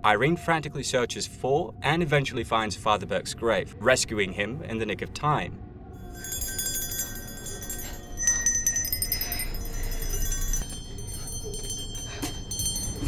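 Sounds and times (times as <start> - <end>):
small metal bells jangling: 6.0 - 13.0.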